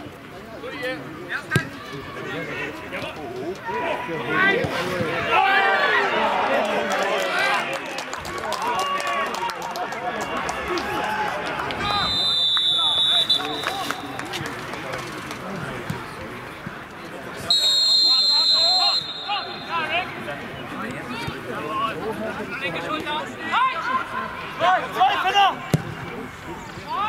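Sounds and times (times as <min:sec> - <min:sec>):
players and spectators calling out: 0:00.5 - 0:07.9, 0:08.5 - 0:27.0
referee's whistle blasts: 0:11.8 - 0:14.2, 0:17.5 - 0:20.1.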